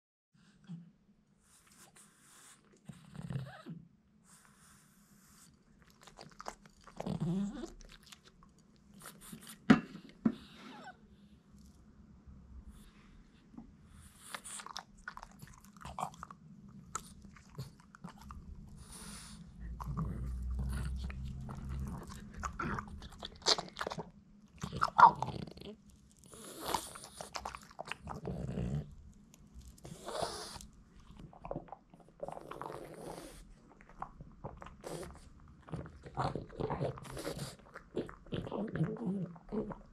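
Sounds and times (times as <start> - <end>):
dog crunching a hard chew: 14.3 - 33.2.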